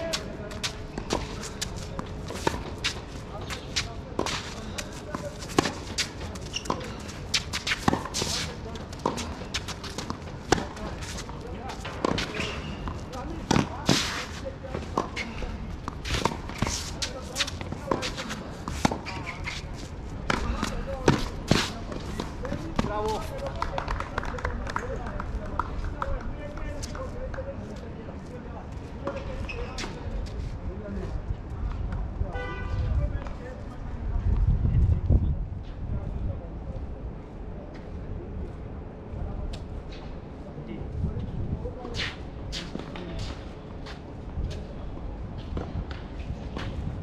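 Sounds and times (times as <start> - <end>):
racket hitting tennis ball: 0.0 - 19.6
footsteps on court: 0.0 - 30.5.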